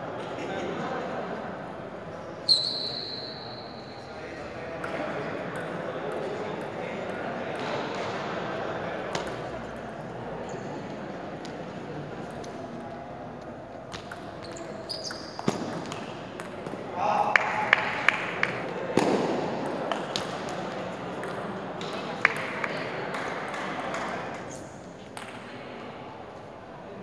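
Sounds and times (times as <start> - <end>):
background chatter: 0.0 - 27.0.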